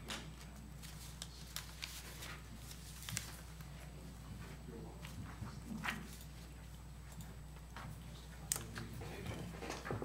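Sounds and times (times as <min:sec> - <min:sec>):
papers being handled: 0:00.0 - 0:06.6
steady low hum: 0:00.0 - 0:10.0
faint knocks and rustles: 0:04.2 - 0:10.0.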